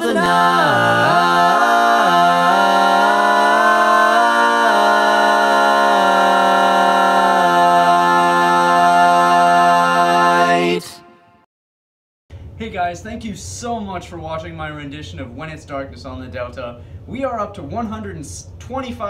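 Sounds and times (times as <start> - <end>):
male a cappella harmony singing: 0.0 - 11.2.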